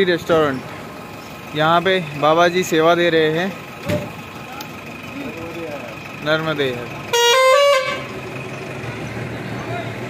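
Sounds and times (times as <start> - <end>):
vehicle horn rising notes: 7.1 - 8.2.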